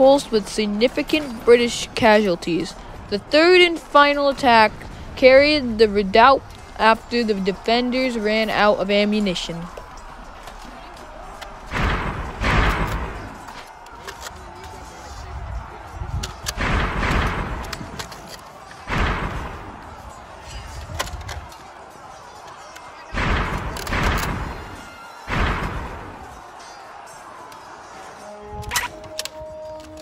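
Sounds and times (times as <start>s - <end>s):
loud thuds with ringing tail: 11.7s - 13.4s.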